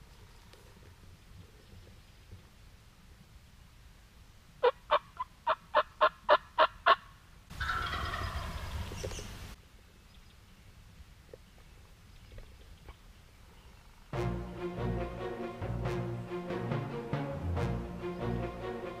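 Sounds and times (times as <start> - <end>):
turkey yelps: 4.6 - 9.2
turkey gobbling: 4.6 - 9.3.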